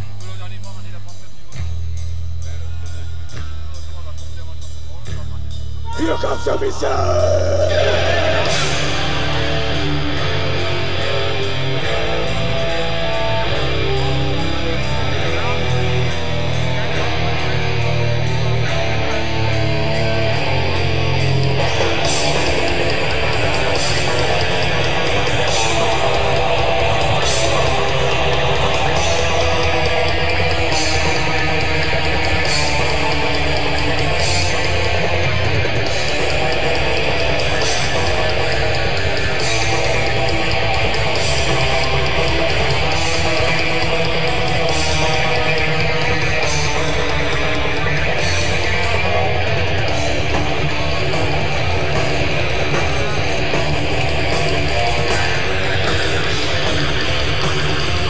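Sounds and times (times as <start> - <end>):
distorted electric guitars and bass: 0.0 - 58.0
drums: 0.0 - 58.0.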